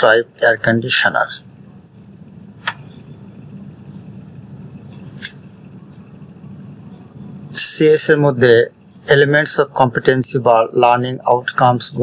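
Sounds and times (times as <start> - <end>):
low recording hum: 0.0 - 12.0
sharp click: 2.6 - 2.9.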